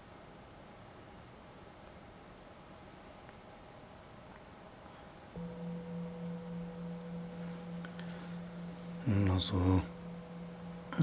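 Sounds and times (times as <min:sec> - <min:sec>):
singing bowl ringing: 0:05.4 - 0:11.0.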